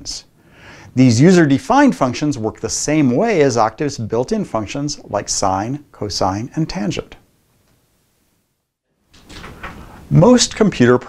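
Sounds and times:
faint room noise: 0.0 - 11.0
person speaking: 0.9 - 7.3, 9.2 - 11.0.

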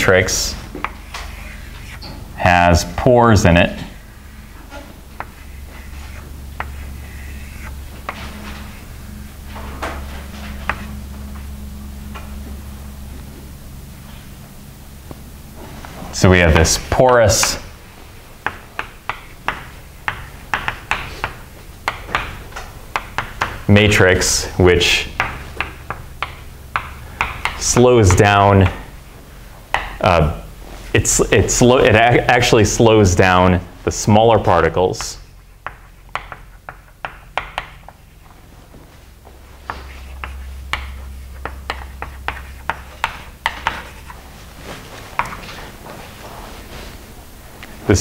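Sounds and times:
faint room hiss: 0.0 - 48.0
chalk tapping on blackboard: 3.8 - 8.4, 10.6 - 10.9, 18.4 - 23.7, 25.2 - 28.8, 29.7 - 30.0, 34.9 - 38.1, 39.6 - 44.2, 45.2 - 45.6.

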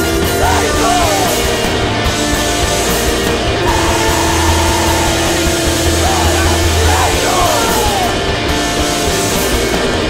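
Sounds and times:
loud rock band: 0.0 - 10.0.

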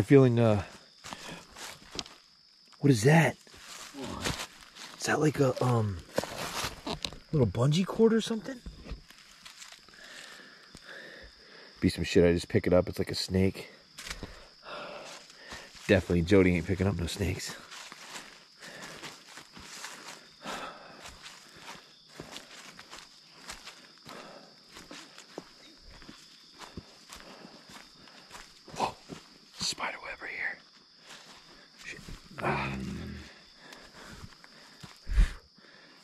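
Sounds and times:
footsteps through forest undergrowth: 0.8 - 2.7, 3.4 - 7.3, 8.8 - 10.8, 13.9 - 16.8, 17.4 - 29.5, 30.7 - 32.3, 33.4 - 35.0.

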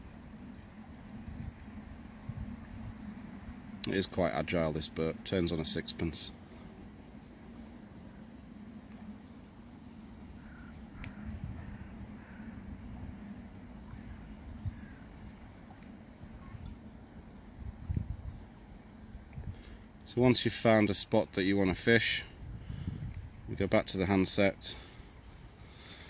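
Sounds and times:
distant bird calls: 0.8 - 20.1, 24.8 - 26.0.

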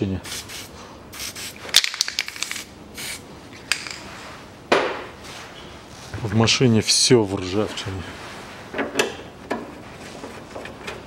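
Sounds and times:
aerosol spray hissing: 0.3 - 1.6.

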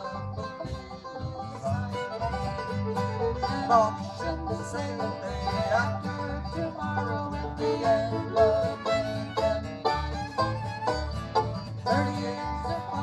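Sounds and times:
acoustic guitar: 0.0 - 13.0
banjo: 0.0 - 13.0
fiddle: 0.0 - 13.0
upright bass notes: 0.0 - 13.0.

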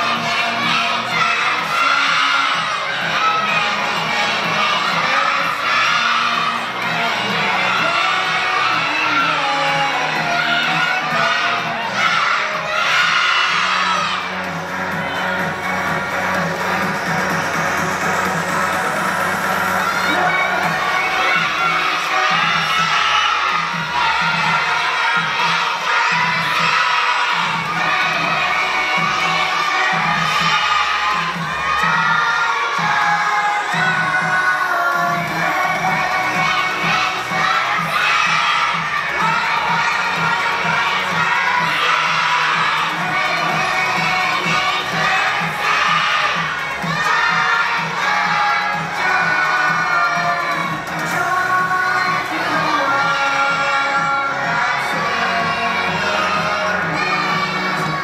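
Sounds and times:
children singing together: 0.0 - 58.0
music with a steady beat: 0.0 - 58.0.

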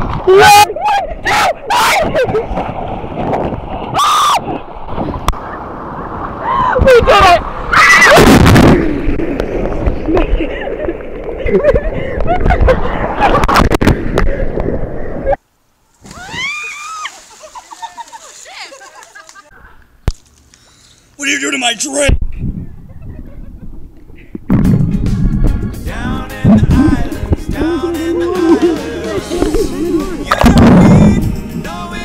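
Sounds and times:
ocean surf and splashing water: 0.0 - 15.4, 16.0 - 19.5
people talking: 6.6 - 7.4, 21.2 - 22.2
people laughing: 10.1 - 13.6, 17.2 - 19.8, 22.7 - 23.8, 27.7 - 30.6.

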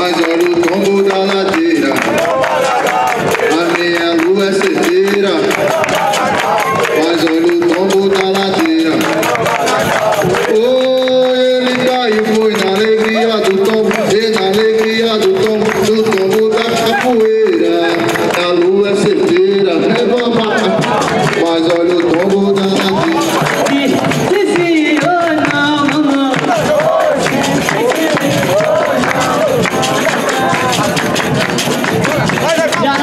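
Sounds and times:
hand clapping: 0.0 - 33.0
hand drum: 0.0 - 33.0
man singing call-and-response: 0.0 - 33.0.

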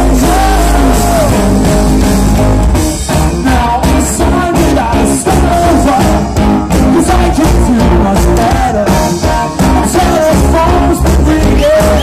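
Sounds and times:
person singing: 0.0 - 1.8, 3.1 - 12.0
drum kit: 0.0 - 12.0
electric guitar: 0.0 - 12.0.

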